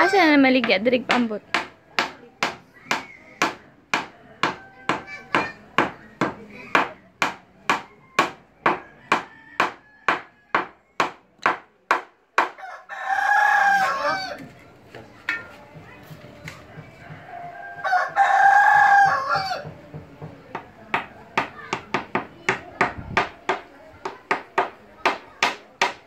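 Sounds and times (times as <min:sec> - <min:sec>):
hammer nailing wood: 0:01.1 - 0:12.6, 0:21.0 - 0:26.0
rooster crowing: 0:08.0 - 0:10.6, 0:12.6 - 0:14.4, 0:16.9 - 0:19.7.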